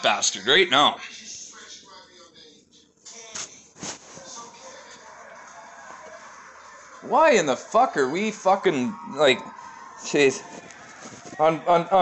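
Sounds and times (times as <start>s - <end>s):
faint television sound: 0.0s - 12.0s.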